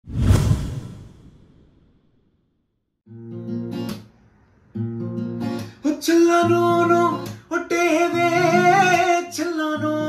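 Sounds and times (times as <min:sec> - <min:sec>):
whoosh sound effect: 0:00.0 - 0:02.2.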